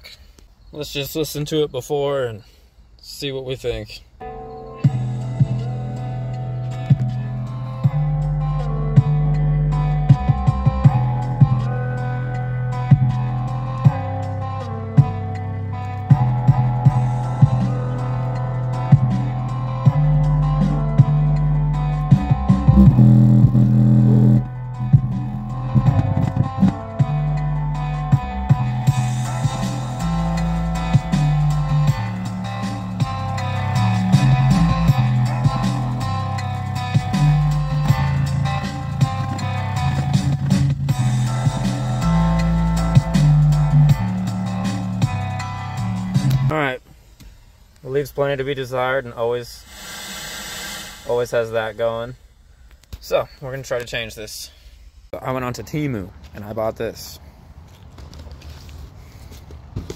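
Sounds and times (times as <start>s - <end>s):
music from car speakers: 4.2s - 47.8s.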